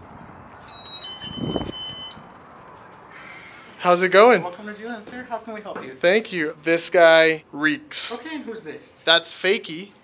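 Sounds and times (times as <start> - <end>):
electronic door chime: 0.6 - 2.3.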